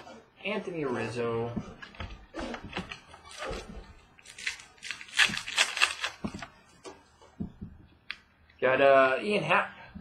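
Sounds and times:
trading cards clicking and rustling: 0:04.2 - 0:06.5.

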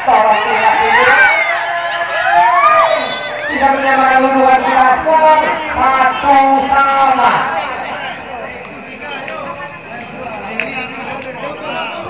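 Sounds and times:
commentator calling out: 0:00.0 - 0:01.4, 0:03.4 - 0:07.7.

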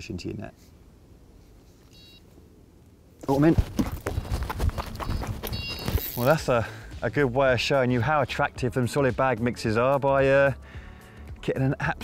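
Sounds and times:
bite alarm high beeps: 0:02.0 - 0:02.2, 0:04.9 - 0:06.1
scuffing knocking and rustling: 0:03.2 - 0:06.3.

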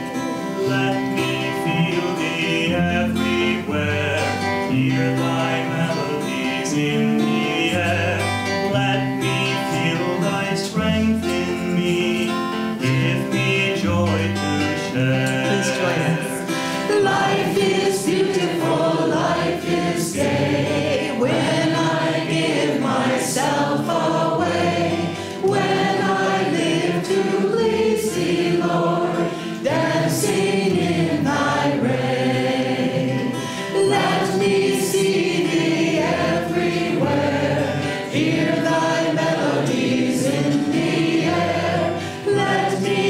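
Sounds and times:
strummed acoustic guitar: 0:00.0 - 0:43.0
woman and man singing: 0:00.6 - 0:43.0.

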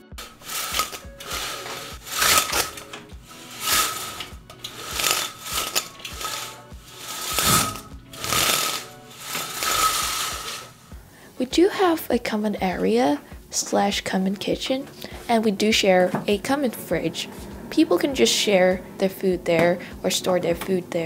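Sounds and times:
window blinds being pulled down: 0:00.0 - 0:11.0
background music: 0:00.0 - 0:21.0.

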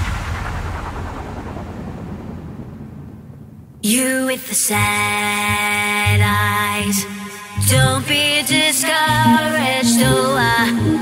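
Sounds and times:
low rumbling wash of noise: 0:00.0 - 0:04.2.

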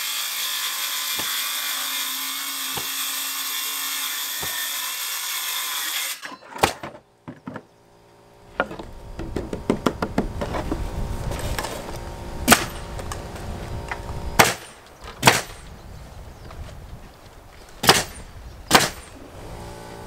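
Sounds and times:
circular saw cutting plywood: 0:00.0 - 0:06.5
knocks and clatter of panel: 0:08.6 - 0:10.8.

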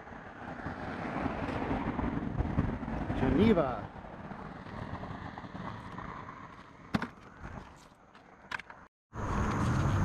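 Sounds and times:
road traffic: 0:00.0 - 0:10.0
wind: 0:00.0 - 0:10.0.

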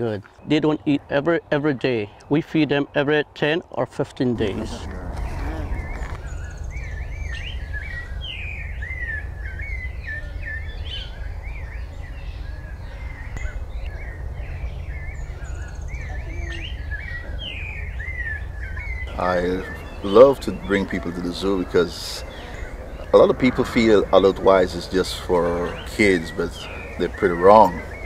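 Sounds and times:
birds chirping and calling: 0:04.2 - 0:28.0
steady low rumble: 0:04.2 - 0:28.0.

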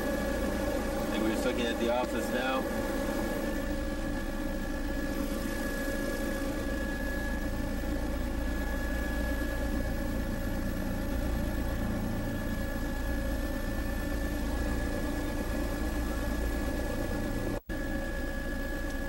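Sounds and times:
aircraft engine drone in cabin: 0:00.0 - 0:19.0.

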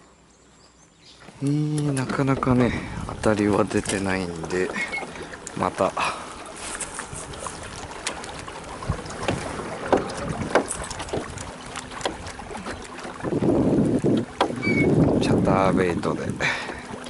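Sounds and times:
wind rushing on microphone: 0:02.3 - 0:04.2, 0:07.0 - 0:07.9, 0:13.2 - 0:16.4.

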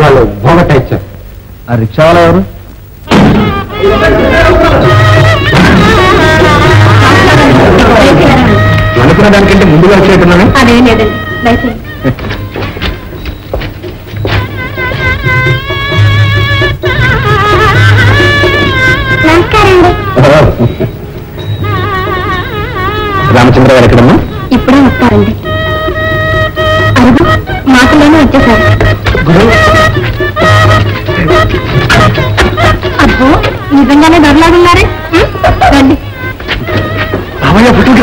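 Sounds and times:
film music with percussive crash: 0:03.0 - 0:08.0.

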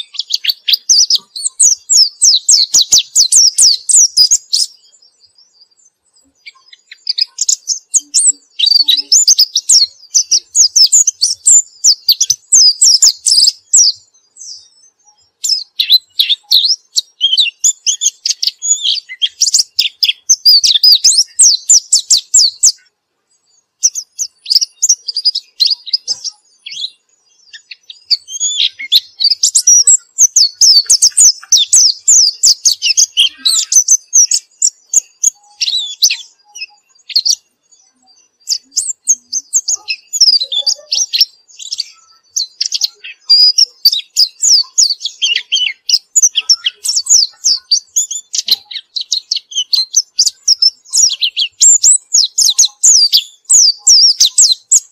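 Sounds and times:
bird twittering song: 0:00.0 - 0:54.9.

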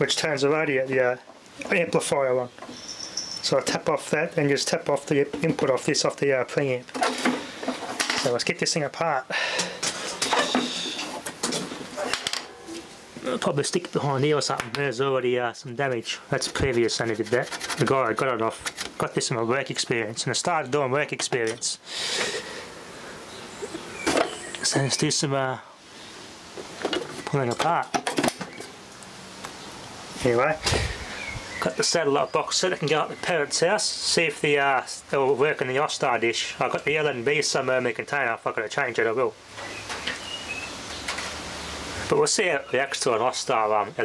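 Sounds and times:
faint steady hiss: 0:00.0 - 0:44.0.

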